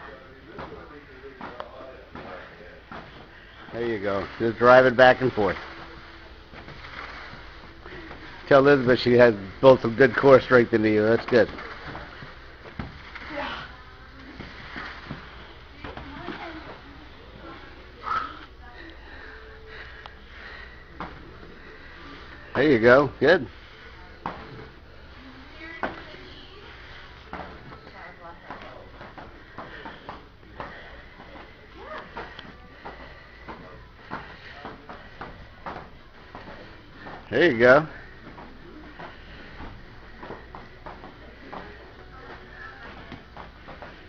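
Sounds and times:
faint voices: 0.0 - 44.0
battle ropes slapping floor: 0.1 - 17.7, 20.4 - 24.8, 25.4 - 44.0
ropes slapping the floor: 0.5 - 16.9.

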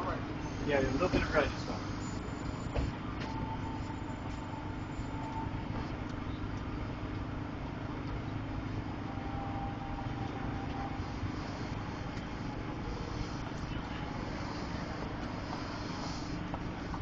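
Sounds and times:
faint thin whine: 0.0 - 6.5, 9.0 - 17.0
city street noise: 0.0 - 17.0
low mechanical hum: 0.0 - 17.0.

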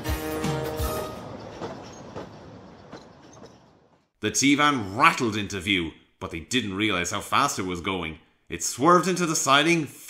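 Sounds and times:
train carriages rattling past: 0.0 - 4.2.

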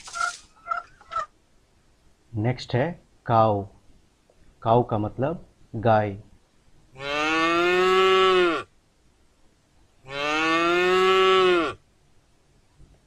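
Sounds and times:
cow mooing: 7.0 - 8.7, 10.0 - 11.8.

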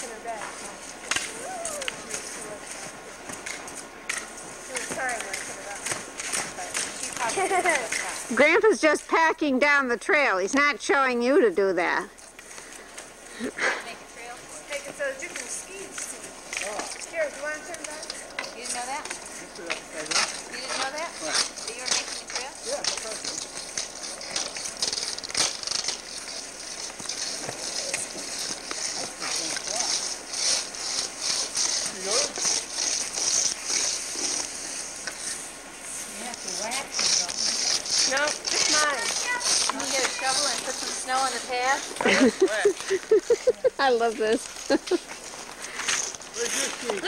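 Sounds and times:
skis and boots crunching snow: 0.0 - 8.8, 12.4 - 47.0.

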